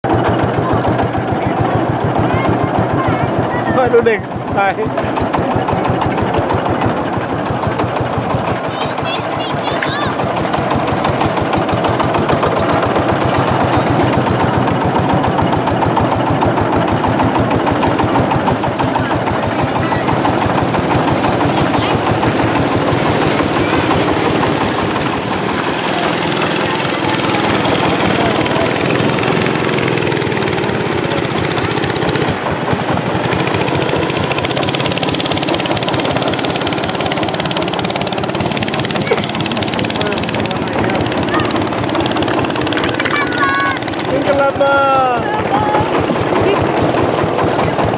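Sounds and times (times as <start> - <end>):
boat engine chugging: 0.0 - 47.9.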